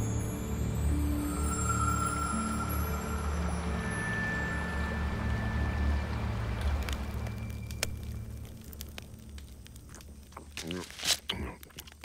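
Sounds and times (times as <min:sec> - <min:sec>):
low music drone: 0:00.0 - 0:09.3
rushing river water: 0:00.0 - 0:09.6.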